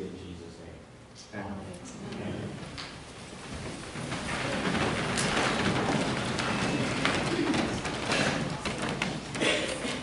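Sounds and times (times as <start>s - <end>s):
people shuffling: 1.9s - 10.0s.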